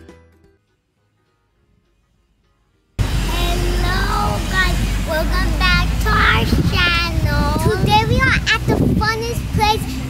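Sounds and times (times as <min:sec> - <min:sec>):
steady low rumble: 0:03.0 - 0:10.0
girls talking: 0:03.3 - 0:10.0.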